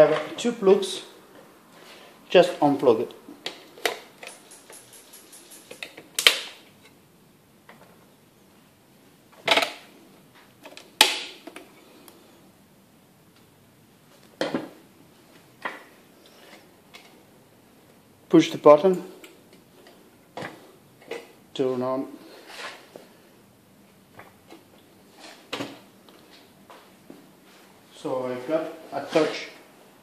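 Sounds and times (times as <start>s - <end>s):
metal bars clicking and knocking: 4.2s - 6.4s.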